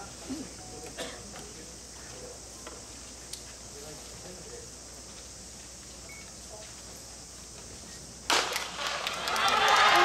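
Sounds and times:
background hiss: 0:00.0 - 0:10.0
crowd noise: 0:08.7 - 0:10.0.

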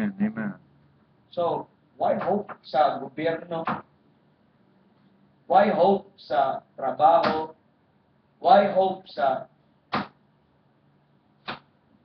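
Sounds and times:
man speaking: 0:00.0 - 0:00.6.

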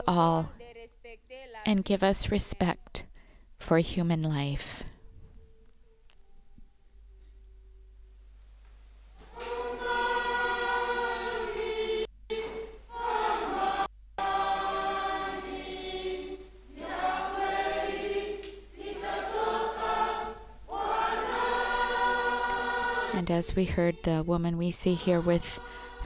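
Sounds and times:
choir singing: 0:09.2 - 0:26.0.

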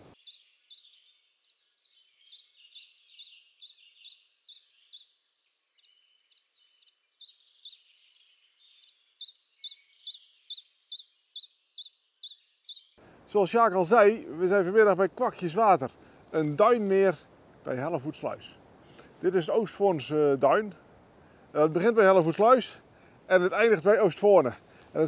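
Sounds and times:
songbird chirping: 0:00.0 - 0:25.0.

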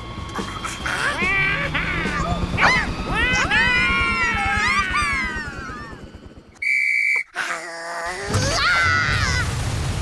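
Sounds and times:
shrill whistle blast: 0:06.6 - 0:07.3.

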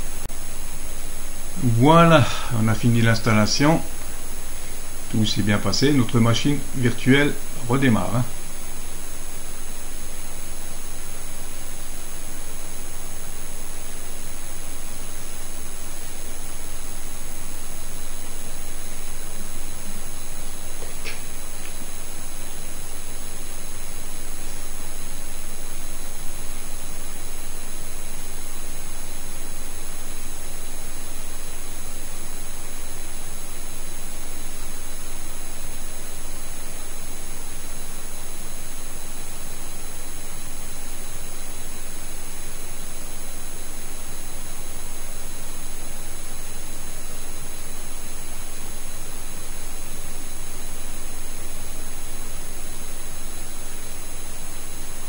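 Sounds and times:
static hiss: 0:00.0 - 0:55.0.

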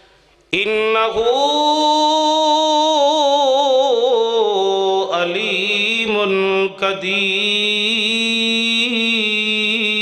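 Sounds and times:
man chanting through a microphone: 0:00.5 - 0:10.0.

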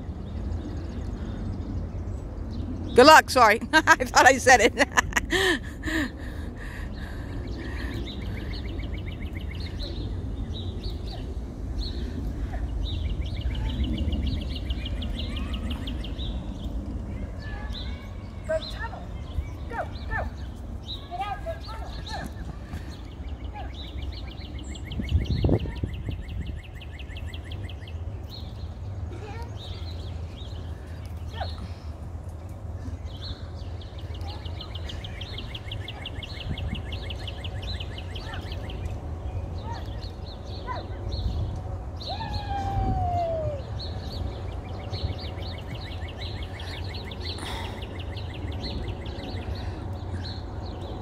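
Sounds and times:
birds chirping: 0:00.0 - 0:51.0
wind rumble on microphone: 0:00.0 - 0:51.0.

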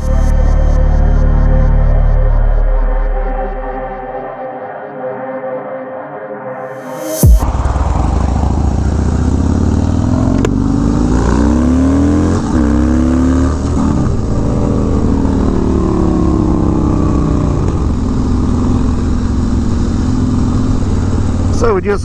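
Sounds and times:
motorcycle accelerating: 0:06.9 - 0:22.0.

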